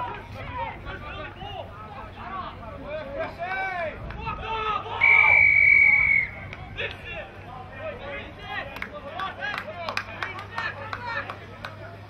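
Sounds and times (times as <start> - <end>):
referee's whistle blast: 5.0 - 6.4.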